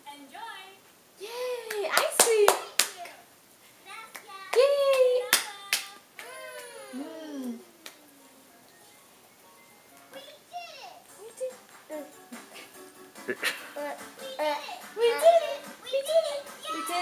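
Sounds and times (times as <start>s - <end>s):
sharp hand claps: 1.7s - 3.2s, 4.1s - 6.8s
cartoon voices and music on tv: 4.3s - 17.0s.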